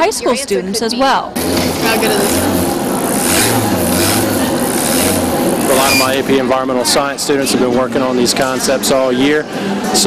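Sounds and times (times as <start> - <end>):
children chattering: 0.0 - 8.2
low generator hum: 1.4 - 7.0
bicycle wheel whirring: 1.4 - 7.3.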